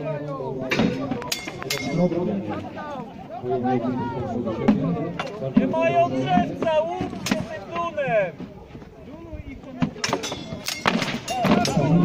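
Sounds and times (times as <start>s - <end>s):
voices of onlookers: 0.0s - 12.0s
metallic clink: 1.3s - 2.1s, 10.0s - 11.8s
weapons hitting shields: 9.8s - 12.0s.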